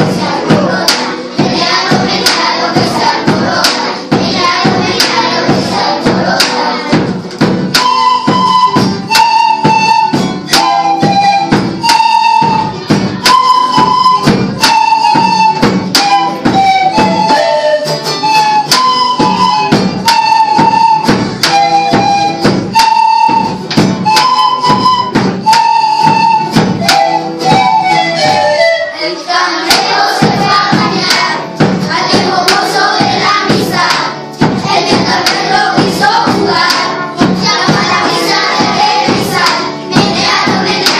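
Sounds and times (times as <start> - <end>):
large hand drum beat: 0.0 - 17.3, 29.7 - 40.9
flutes playing a melody: 7.7 - 30.6.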